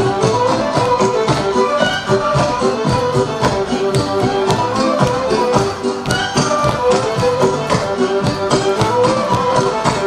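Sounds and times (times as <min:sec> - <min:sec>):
folk dance music with fiddle: 0:00.0 - 0:10.0.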